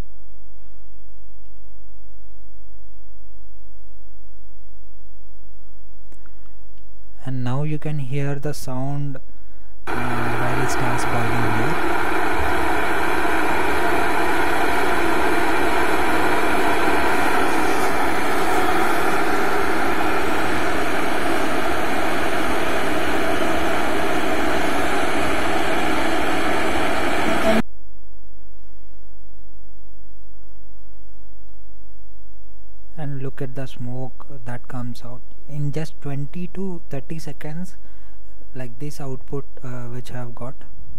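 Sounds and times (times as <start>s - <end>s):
steady electrical hum: 9.8s - 28.0s
electric kettle hissing: 9.9s - 27.6s.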